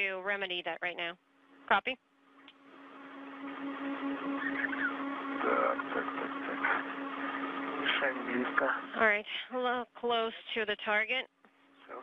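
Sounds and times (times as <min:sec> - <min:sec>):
low hum: 0:00.0 - 0:12.0
radio static hiss: 0:02.9 - 0:09.2
faint garbled radio voices: 0:03.8 - 0:11.2.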